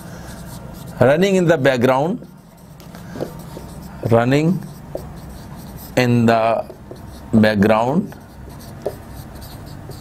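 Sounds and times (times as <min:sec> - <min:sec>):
marker pen writing on whiteboard: 0:00.0 - 0:10.0.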